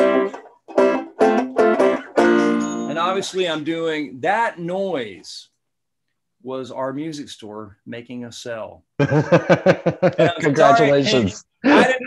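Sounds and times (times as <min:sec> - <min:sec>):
banjo picked notes: 0:00.0 - 0:03.4.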